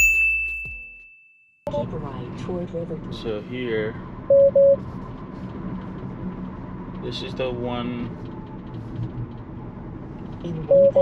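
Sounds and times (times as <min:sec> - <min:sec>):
bright bell ding: 0:00.0 - 0:01.6.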